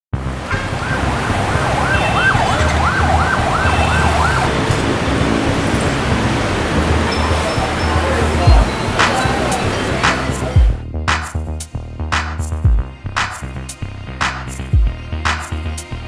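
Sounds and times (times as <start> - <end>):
low rumble of street traffic: 0.1 - 16.0
siren yelping: 0.5 - 4.5.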